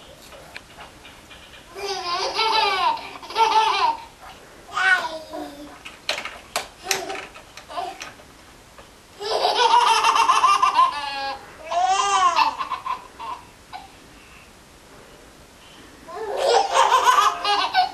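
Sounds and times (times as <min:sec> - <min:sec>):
baby girls laughing: 0:01.7 - 0:04.2, 0:09.2 - 0:13.9, 0:16.1 - 0:17.9.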